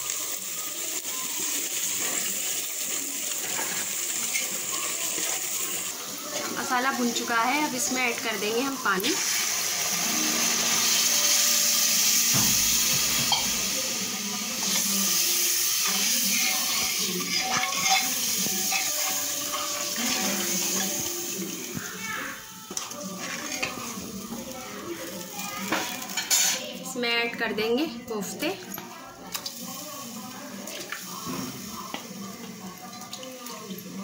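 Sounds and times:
water sizzling in hot pot: 0.0s - 34.0s.

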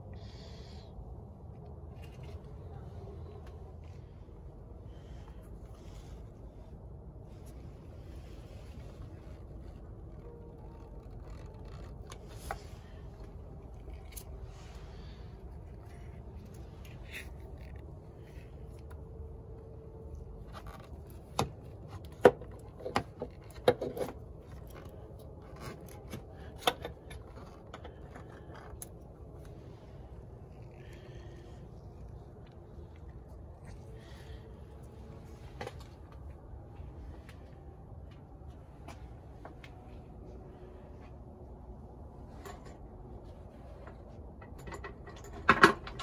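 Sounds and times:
low background hum: 0.0s - 46.0s.

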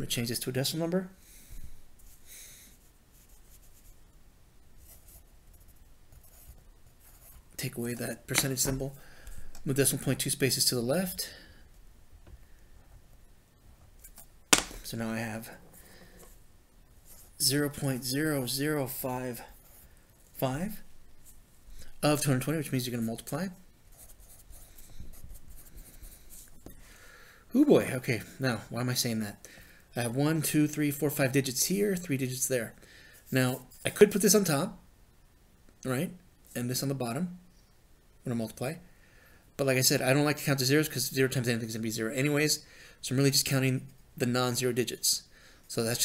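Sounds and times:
pencil scratching on paper: 23.9s - 26.6s.

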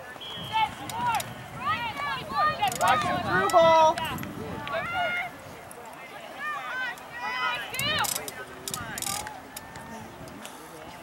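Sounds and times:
people shouting across field: 6.1s - 8.1s.

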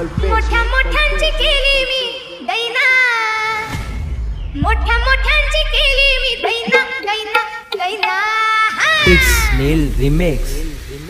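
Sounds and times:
heavy bass: 0.0s - 2.0s, 3.9s - 6.4s, 9.0s - 11.0s
wobbling voice-like sounds: 8.8s - 11.0s.

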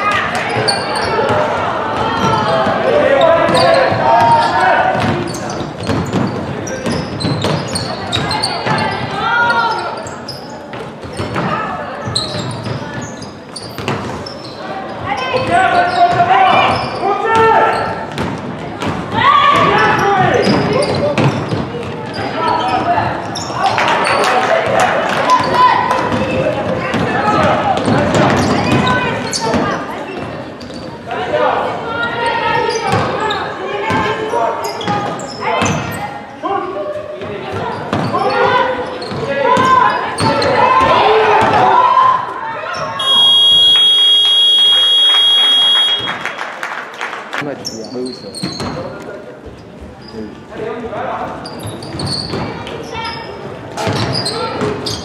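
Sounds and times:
voices calling out: 19.1s - 46.3s
scoreboard buzzer: 43.0s - 46.2s.

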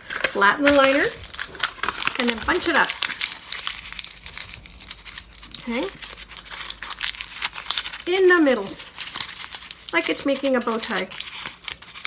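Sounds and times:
paper liner crinkling: 0.0s - 12.0s.

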